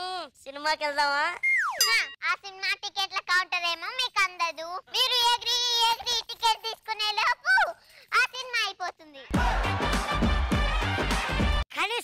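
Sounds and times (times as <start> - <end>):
child speaking: 1.9 - 9.3.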